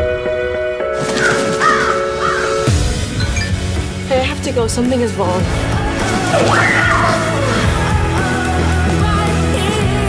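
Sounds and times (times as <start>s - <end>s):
crow cawing: 1.0s - 2.8s.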